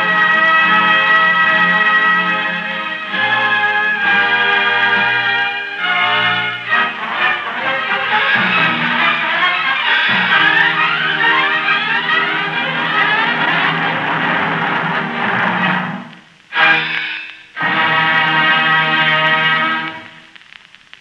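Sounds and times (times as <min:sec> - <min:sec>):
orchestra playing: 0:00.0 - 0:20.1.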